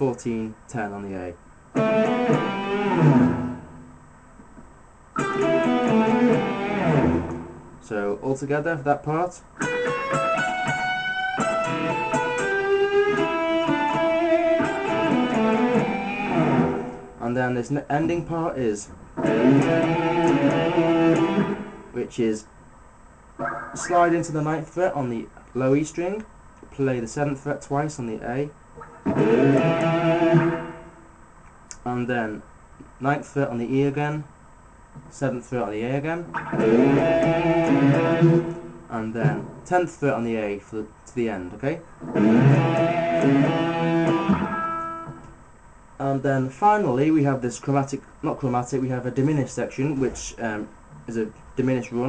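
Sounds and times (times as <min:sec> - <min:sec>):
electric guitar blues lead: 0:01.8 - 0:03.8, 0:05.2 - 0:07.8, 0:09.6 - 0:17.2, 0:19.2 - 0:22.0, 0:23.4 - 0:24.3, 0:28.8 - 0:31.1, 0:36.2 - 0:39.7, 0:42.0 - 0:45.4.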